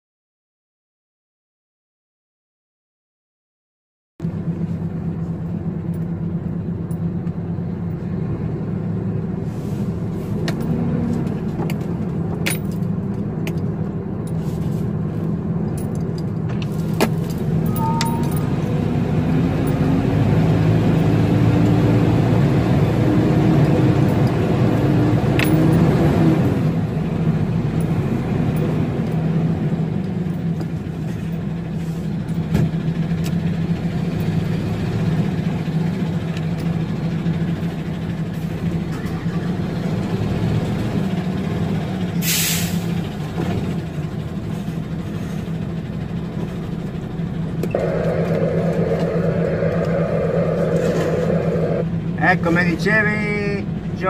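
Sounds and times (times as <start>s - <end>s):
diesel truck engine running: 4.2s - 54.0s.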